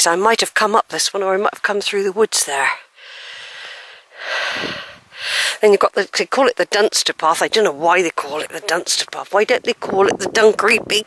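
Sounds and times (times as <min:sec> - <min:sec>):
woman breathing heavily: 0:02.9 - 0:05.6.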